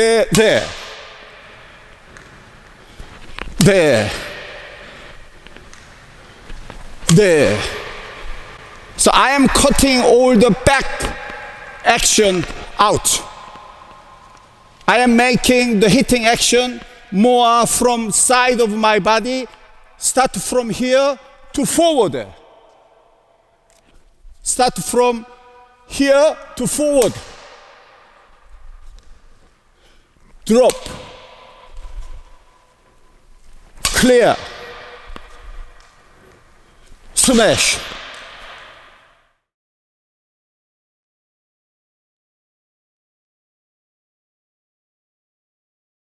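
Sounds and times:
man speaking with echo: 0.0s - 2.2s, 3.5s - 6.0s, 6.9s - 23.6s, 24.2s - 29.5s, 30.4s - 36.4s, 37.0s - 39.1s.

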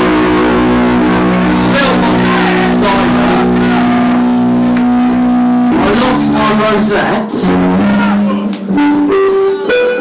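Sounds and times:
loud live band music: 0.0s - 10.0s.

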